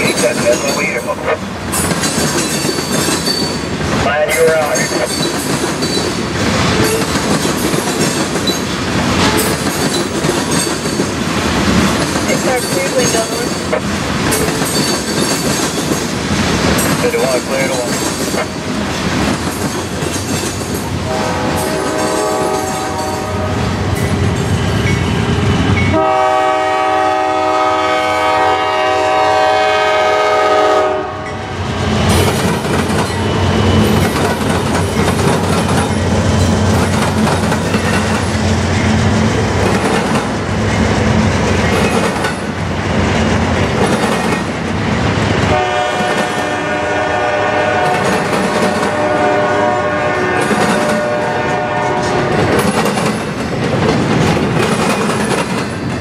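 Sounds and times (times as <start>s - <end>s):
freight train wheels clattering on rail: 0.0s - 28.8s, 29.5s - 56.0s
locomotive air horn chord: 21.1s - 23.7s, 25.9s - 31.2s, 45.5s - 52.4s.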